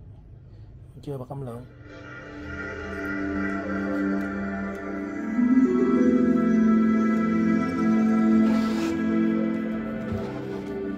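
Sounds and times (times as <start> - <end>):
slow music from speakers: 1.8 - 10.9.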